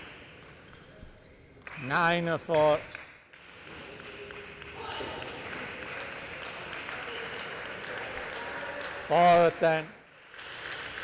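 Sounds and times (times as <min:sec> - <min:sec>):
applause: 0:04.2 - 0:11.0.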